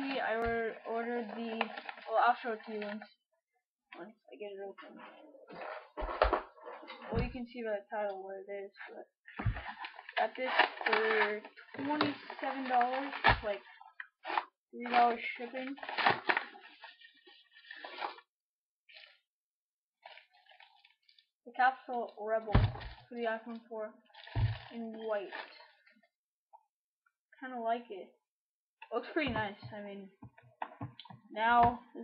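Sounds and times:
envelope and plastic bag crinkling: 0:00.0 - 0:03.0, 0:09.4 - 0:18.2, 0:20.0 - 0:21.3, 0:24.1 - 0:25.8.

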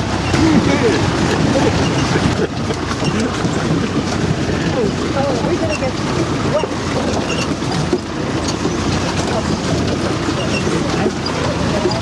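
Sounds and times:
vehicle engine and road noise: 0:00.0 - 0:12.0
vehicle jolting over ruts: 0:00.0 - 0:12.0.

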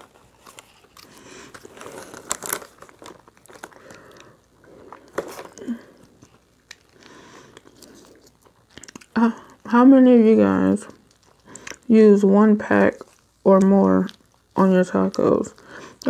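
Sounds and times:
plastic packet tearing and crinkling: 0:00.0 - 0:07.0
soft rustling and handling: 0:00.0 - 0:07.0.

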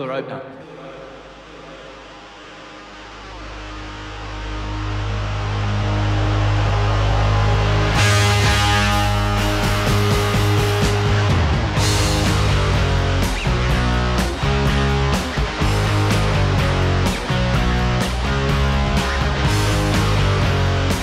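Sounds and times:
rock band playing: 0:03.4 - 0:21.0
drums and cymbals crashing: 0:06.7 - 0:21.0.

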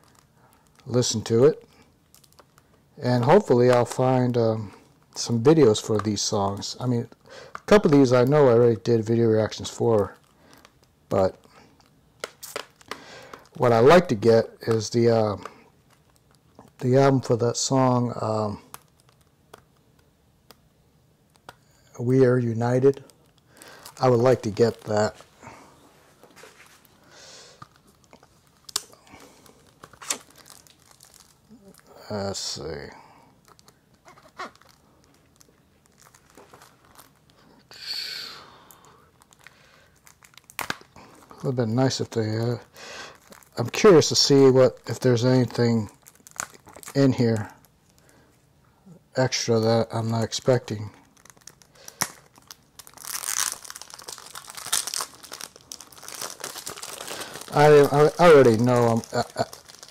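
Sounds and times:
packaging rustling and ticking: 0:00.0 - 0:37.5, 0:38.6 - 0:48.3, 0:50.1 - 0:59.9.

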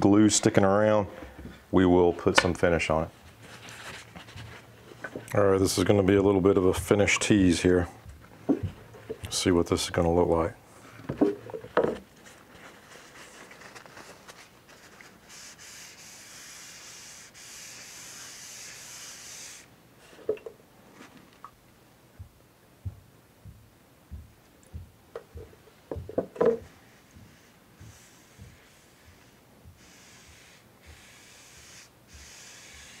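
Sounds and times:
hand rubbing oil on wood: 0:11.0 - 0:20.3, 0:25.2 - 0:33.0.

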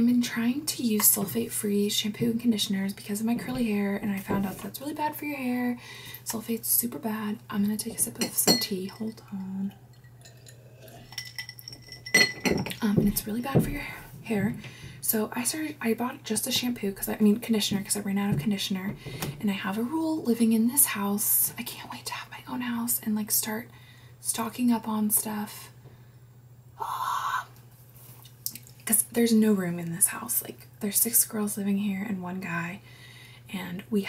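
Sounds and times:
low steady hum: 0:00.0 - 0:34.0
glass clinking: 0:08.2 - 0:13.1
person sipping tea: 0:09.6 - 0:11.4.

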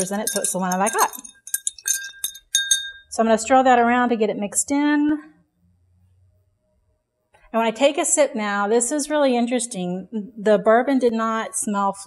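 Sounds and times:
bar spoon clinking against glass: 0:00.0 - 0:03.1.

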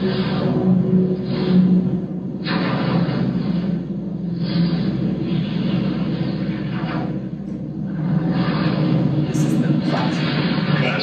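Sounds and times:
noisy whooshes: 0:00.0 - 0:11.0.

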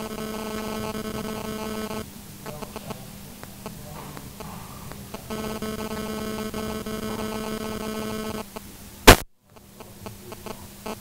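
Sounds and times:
steady electrical buzz: 0:00.0 - 0:11.0.

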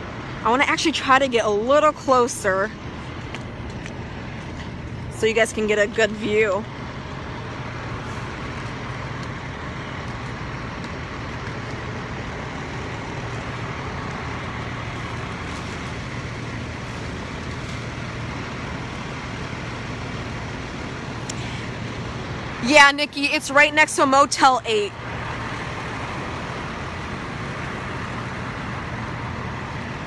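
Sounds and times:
diesel engines running: 0:00.0 - 0:30.0.

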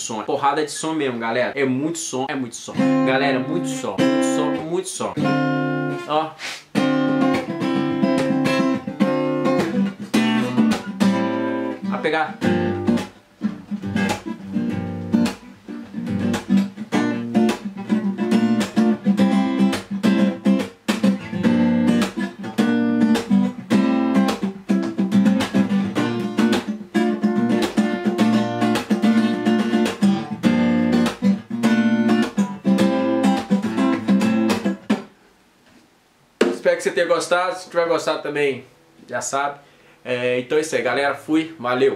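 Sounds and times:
acoustic guitar strummed chords: 0:02.8 - 0:06.1, 0:06.7 - 0:35.1.

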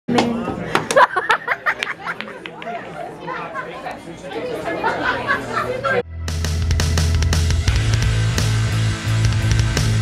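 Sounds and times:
people chattering: 0:00.1 - 0:06.0.

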